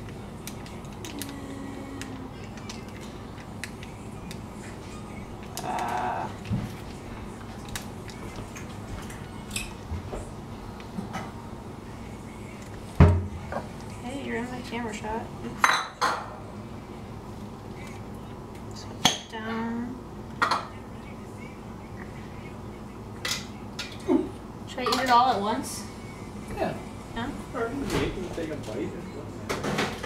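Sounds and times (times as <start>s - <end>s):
low room hum: 0.0s - 30.0s.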